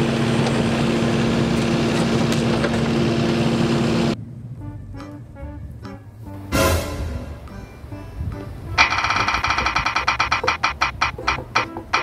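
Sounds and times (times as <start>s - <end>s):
spinning wheel ticking: 8.8s - 12.0s.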